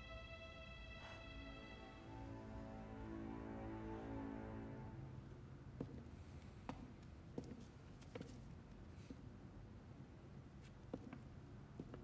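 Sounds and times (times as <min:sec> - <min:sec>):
soft film score chords: 0:00.0 - 0:05.8.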